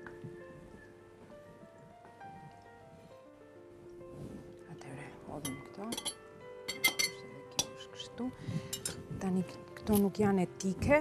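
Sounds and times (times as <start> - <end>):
background music: 0.0 - 11.0
knife clinking against glass bowl: 5.4 - 8.1.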